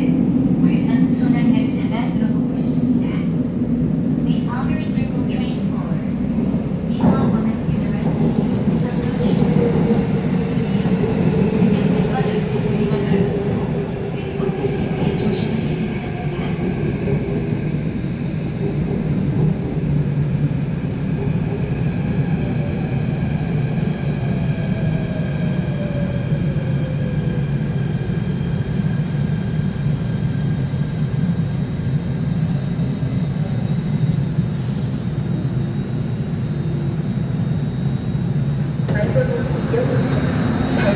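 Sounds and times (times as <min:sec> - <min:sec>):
subway train rumbling: 0:00.0 - 0:40.9.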